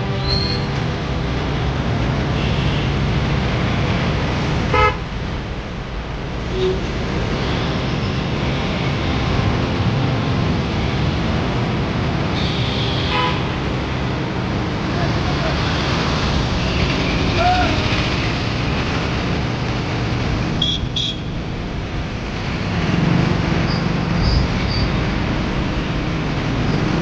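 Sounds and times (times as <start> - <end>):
traffic engines: 0.0 - 27.0
indistinct voices: 14.2 - 19.2.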